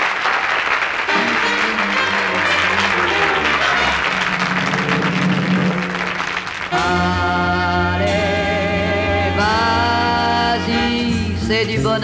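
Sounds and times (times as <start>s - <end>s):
audience applauding: 0.0s - 7.2s
instrumental song intro: 1.0s - 12.0s.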